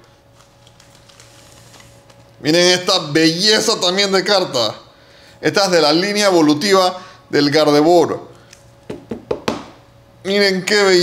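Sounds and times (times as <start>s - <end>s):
faint steady hum: 0.0s - 11.0s
card sliding into plastic sleeve: 0.4s - 2.2s.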